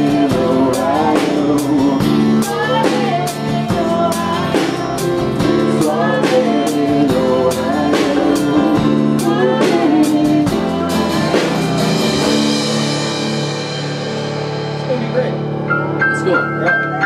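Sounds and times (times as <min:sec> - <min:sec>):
drum hits: 0:00.0 - 0:17.0
guitar chords: 0:00.0 - 0:17.0
rock band playing: 0:00.0 - 0:17.0.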